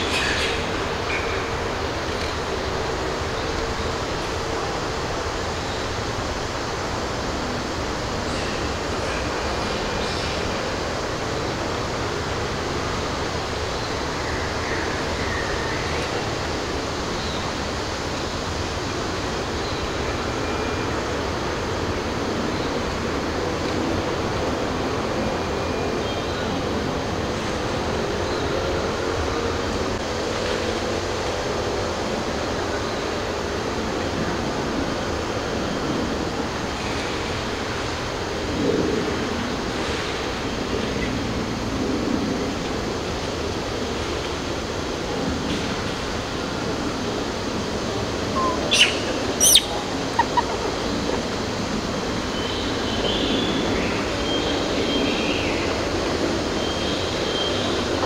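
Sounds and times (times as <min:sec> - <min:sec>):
steady rushing noise: 0:00.0 - 0:58.0.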